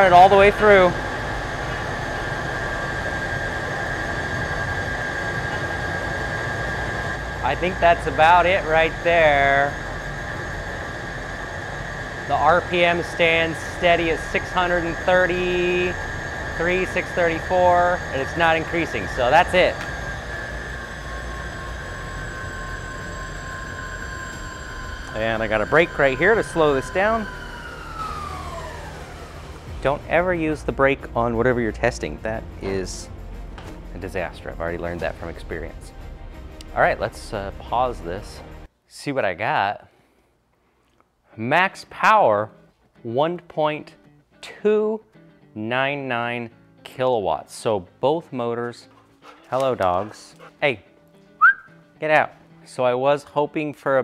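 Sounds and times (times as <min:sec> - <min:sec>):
wheels whirring on roller: 0:00.0 - 0:30.6
high motor whine: 0:00.0 - 0:38.7.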